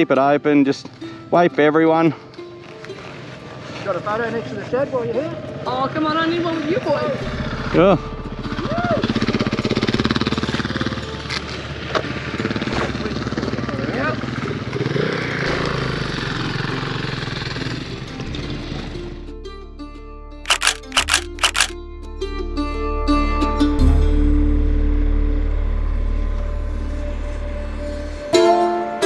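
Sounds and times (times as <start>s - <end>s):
plucked-string music: 0.0s - 10.2s.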